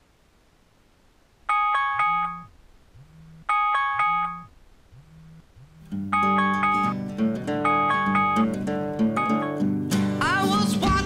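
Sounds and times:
phone alarm chiming notes: 1.5s - 9.7s
low buzz: 2.1s - 7.0s.

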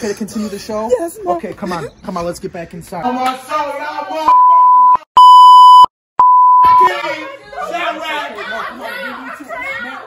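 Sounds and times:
censor bleeps: 4.3s - 6.9s.

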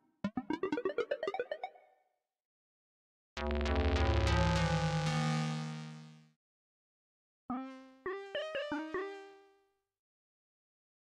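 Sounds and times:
synthesizer notes: 0.2s - 1.8s.

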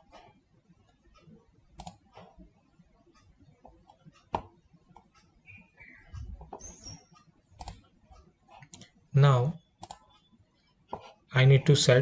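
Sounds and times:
mouse and keyboard clicks: 1.8s - 2.4s, 7.6s - 7.9s, 9.8s - 10.2s.

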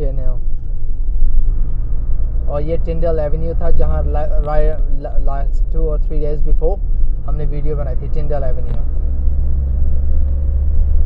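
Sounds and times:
car interior road rumble: 0.0s - 11.0s.

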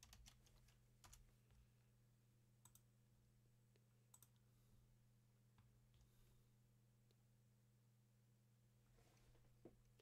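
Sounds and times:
faint steady low hum: 0.0s - 10.0s.

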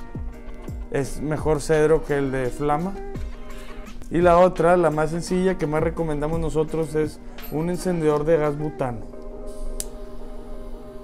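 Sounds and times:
background music steady chord: 0.0s - 11.0s
torch lighter ignition click: 9.2s - 10.2s.

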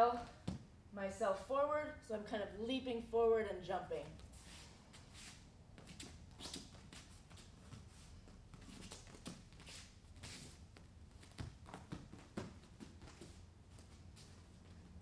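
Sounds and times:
bare feet thudding on mats: 5.8s - 14.6s.

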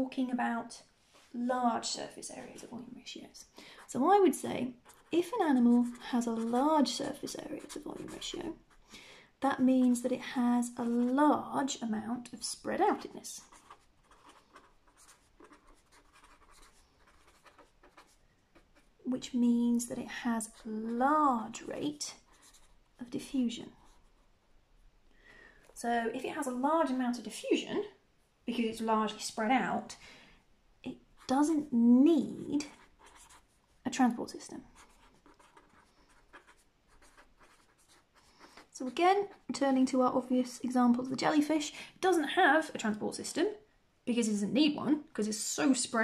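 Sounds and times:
pen scratching on paper: 4.7s - 8.8s, 13.4s - 18.9s, 22.2s - 22.8s, 32.7s - 33.5s, 34.8s - 39.5s.

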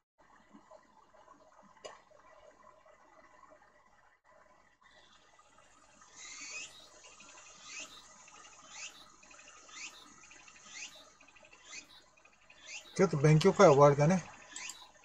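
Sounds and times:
bird chirping: 6.1s - 15.0s.

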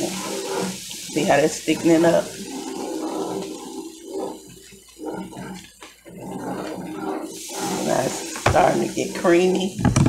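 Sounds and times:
gravy bubbling while stirred: 0.0s - 10.0s.

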